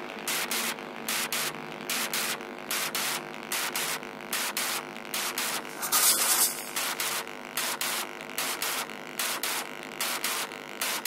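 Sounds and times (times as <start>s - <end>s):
hissing noise hits: 5.6s - 7.2s.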